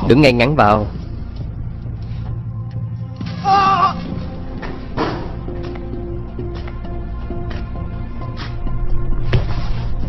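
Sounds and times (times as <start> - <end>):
low background score drone: 0.0 - 10.0
person crying ah: 3.4 - 4.0.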